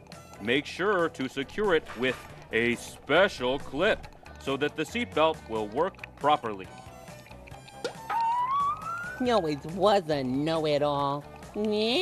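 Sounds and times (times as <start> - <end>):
quiet background music: 0.0 - 12.0
rising whistle sound effect: 7.9 - 9.3.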